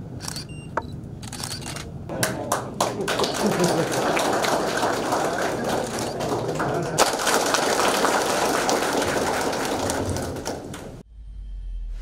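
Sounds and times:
audience applauding: 2.1 - 11.0.

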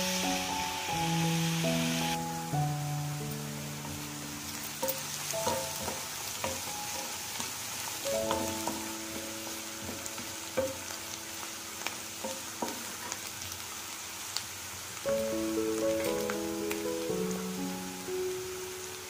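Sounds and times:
soft background music: 0.0 - 12.8, 15.1 - 19.0
onion sizzling in hot oil: 0.0 - 19.0
wooden spatula scraping a pan: 3.9 - 8.0.

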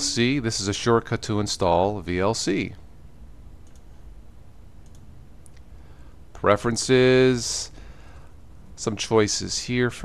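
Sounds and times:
low steady hum: 0.0 - 10.0
computer mouse clicks: 3.6 - 4.0, 4.8 - 5.7.

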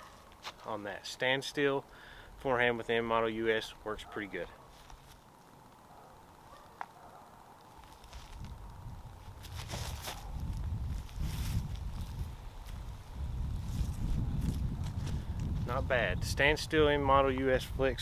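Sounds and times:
wind buffeting microphone: 8.1 - 18.0.

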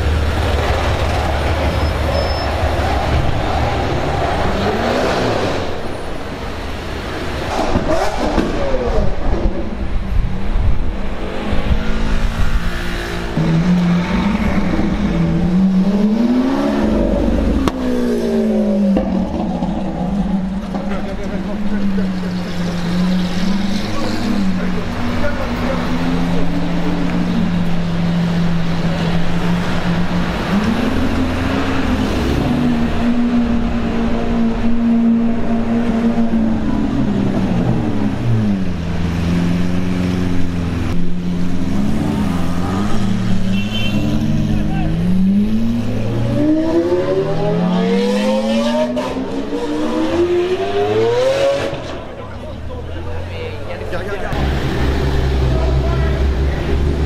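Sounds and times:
car engines revving: 0.0 - 57.0
cars accelerating away: 0.0 - 57.0.

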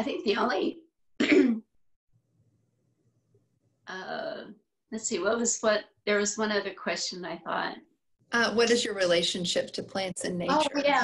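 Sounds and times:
person clearing throat: 1.2 - 1.7.

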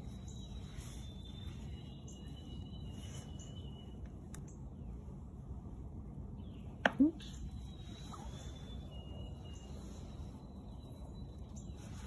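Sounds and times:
faint high whistled calls: 0.0 - 4.6, 6.5 - 12.0.

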